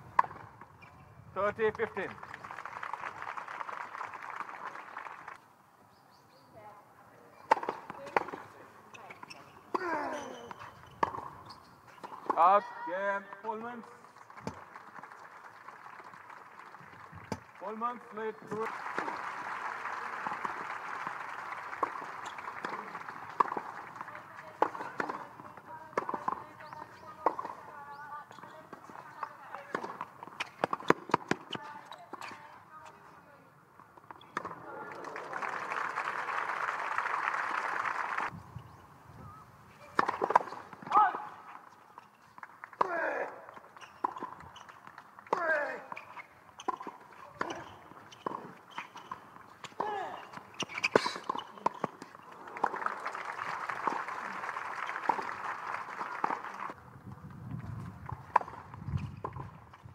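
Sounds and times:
crowd applause: 2.1 - 5.4, 14.2 - 17.6, 18.6 - 24.1, 34.7 - 38.3, 52.3 - 56.8
tennis ball struck by rackets: 39.9 - 41.0.

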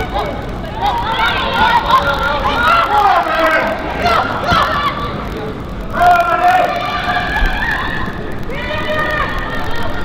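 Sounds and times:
people shouting on a pitch: 0.0 - 10.0.

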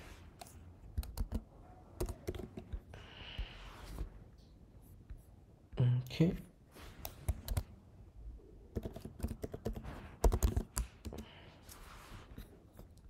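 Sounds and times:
computer keyboard typing: 0.4 - 2.9, 7.0 - 7.7, 8.7 - 11.3.

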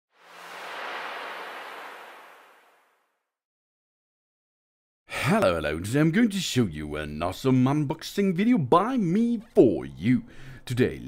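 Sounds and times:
whoosh sound effect: 0.1 - 3.1.

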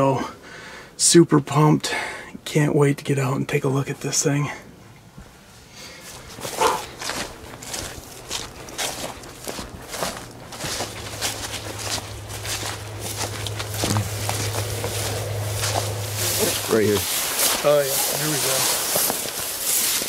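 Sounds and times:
steady low hum: 4.2 - 20.0
footsteps through dry grass: 5.9 - 20.0.

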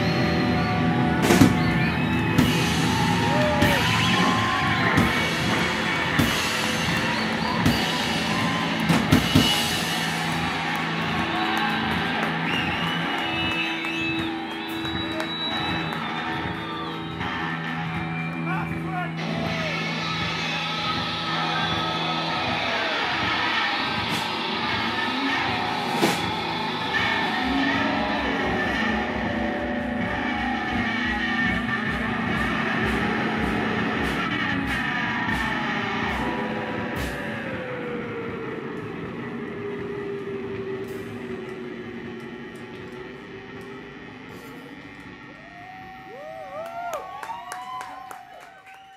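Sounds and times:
drum kit beat: 0.0 - 44.8
electric guitar through effects: 0.0 - 47.2.

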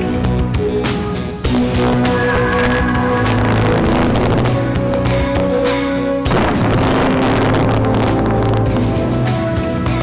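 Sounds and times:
news theme music: 0.0 - 10.0.

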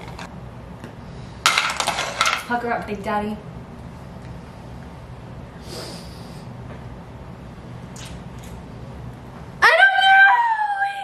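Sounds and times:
breathy hiss: 5.6 - 6.6
soft breathing through nose: 5.6 - 6.6
lip sounds of kiss: 7.9 - 8.6.

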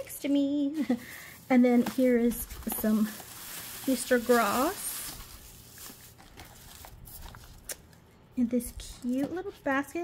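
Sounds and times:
paper rustling: 0.8 - 7.9.

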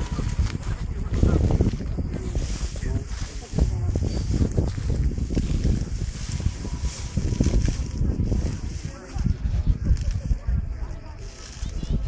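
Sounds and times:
background voices: 0.0 - 12.0
wind buffeting microphone: 0.0 - 12.0.

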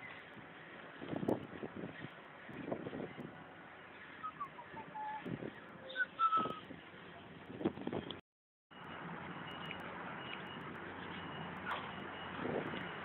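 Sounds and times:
street background noise: 0.0 - 13.0
person whistling a tune: 5.9 - 6.6.

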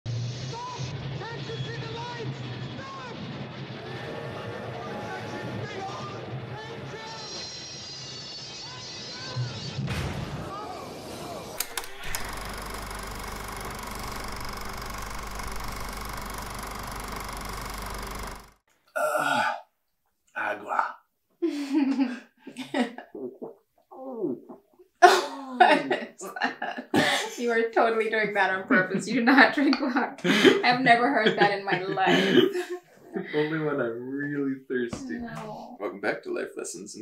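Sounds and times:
voices: 27.4 - 35.8.

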